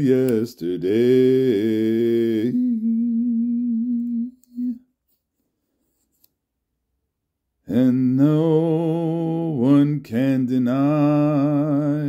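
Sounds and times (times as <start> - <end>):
man singing unaccompanied: 0.0 - 4.8, 7.6 - 12.0.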